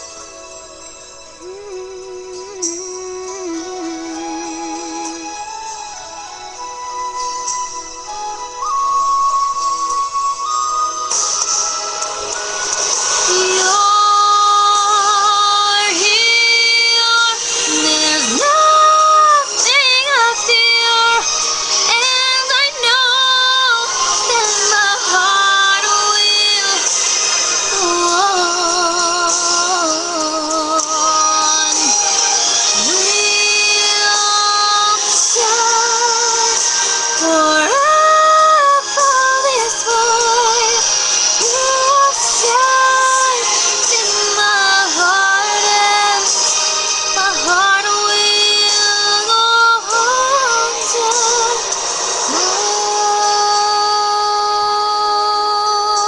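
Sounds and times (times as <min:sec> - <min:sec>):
karaoke backing track: 0:00.0 - 0:56.0
woman singing a slow ballad: 0:01.3 - 0:06.6, 0:12.3 - 0:56.0.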